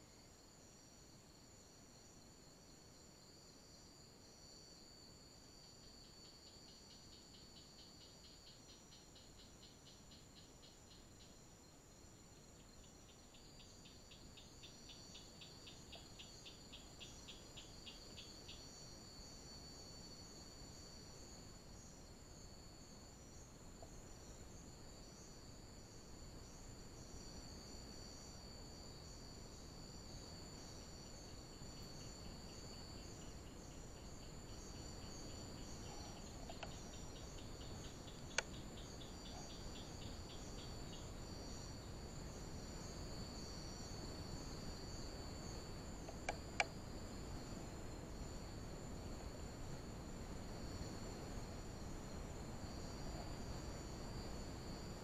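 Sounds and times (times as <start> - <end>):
crickets chirring: 0.0 - 55.0.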